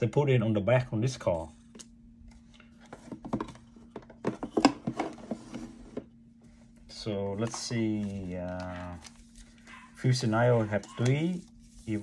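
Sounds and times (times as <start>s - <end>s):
cardboard packaging being handled: 7.3s - 12.0s.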